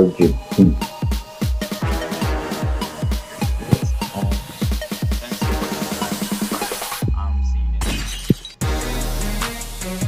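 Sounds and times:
electronic music: 0:00.0 - 0:10.0.

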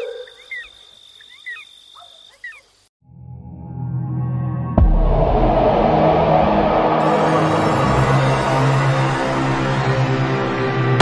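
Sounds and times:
music: 0:03.0 - 0:11.0.

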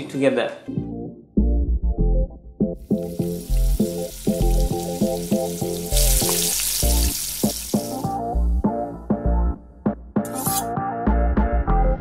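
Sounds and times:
background music with steady beat: 0:00.7 - 0:12.0
patties sizzling on a griddle: 0:02.8 - 0:08.1.

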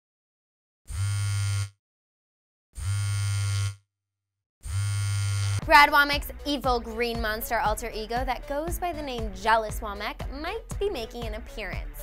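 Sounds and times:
phone vibrating on a table: 0:00.9 - 0:01.8, 0:02.8 - 0:03.8, 0:04.6 - 0:05.6.

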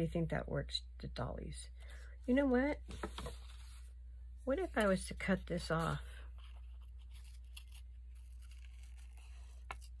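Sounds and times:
scissors cutting paper: 0:06.8 - 0:10.0.

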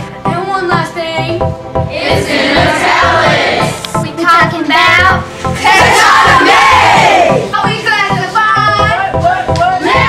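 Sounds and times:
pop dance beat: 0:00.0 - 0:10.0.

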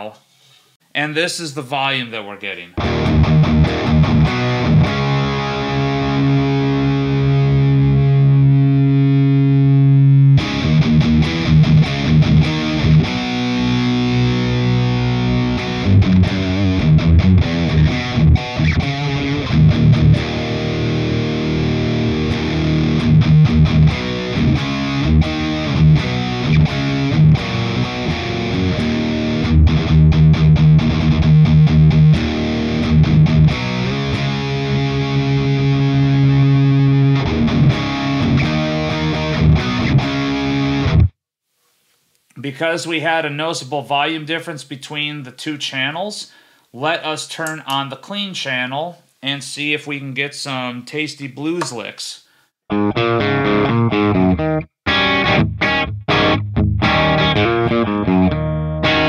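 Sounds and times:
distorted electric guitar: 0:02.8 - 0:41.2, 0:52.7 - 0:59.0.

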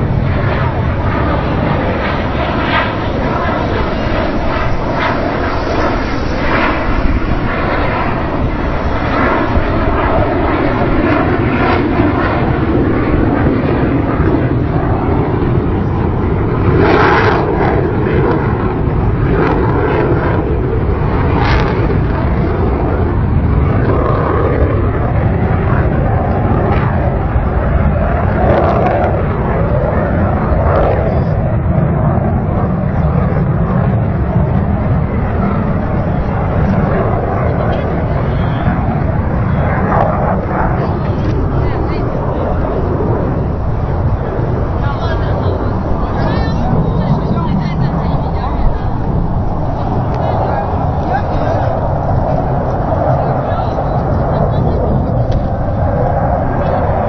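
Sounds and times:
aircraft engine noise: 0:00.0 - 0:57.0.

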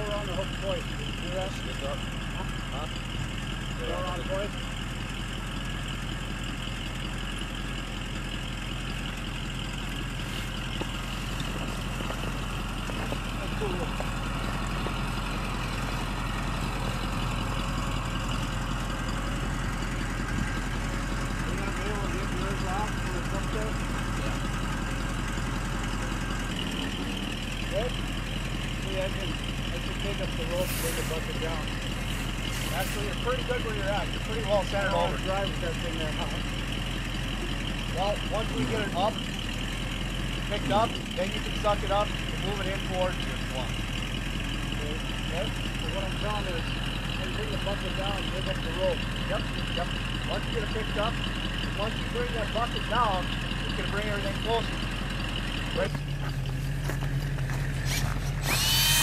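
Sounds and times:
truck engine running: 0:00.0 - 0:59.0.

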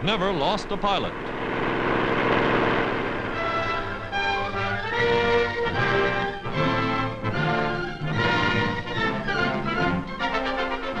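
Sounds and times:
airboat engine and propeller roar: 0:00.0 - 0:06.5
faint music: 0:00.0 - 0:11.0.

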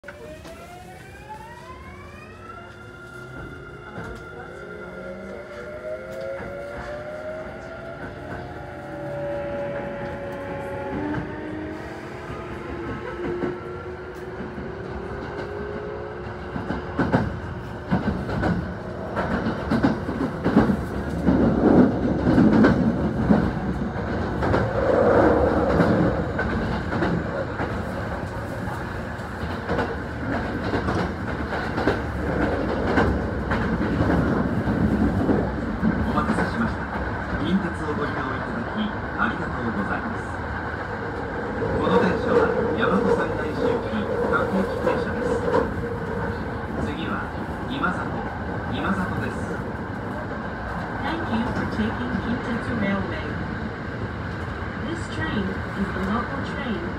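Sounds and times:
train wheels clattering on rails: 0:16.3 - 0:28.3, 0:29.3 - 0:37.5.

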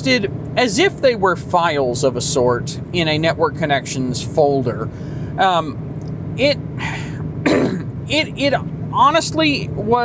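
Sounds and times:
man speaking: 0:00.0 - 0:05.8, 0:06.4 - 0:07.2, 0:08.1 - 0:10.0
car road noise hum: 0:00.0 - 0:10.0
man clearing throat: 0:06.8 - 0:07.9.

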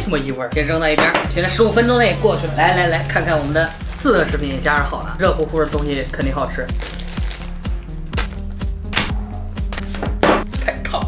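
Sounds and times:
music with a steady beat: 0:00.0 - 0:11.0
packet crinkling and rustling: 0:03.8 - 0:08.4.

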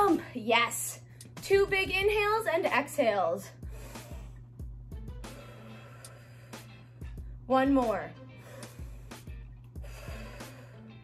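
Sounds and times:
soft music with steady beat: 0:01.0 - 0:02.9, 0:03.5 - 0:11.0
person breathing deeply: 0:03.6 - 0:04.5, 0:05.2 - 0:07.3, 0:08.4 - 0:11.0.

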